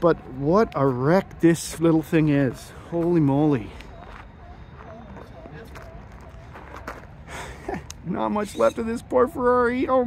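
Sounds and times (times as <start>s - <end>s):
distant people talking: 0.0s - 10.0s.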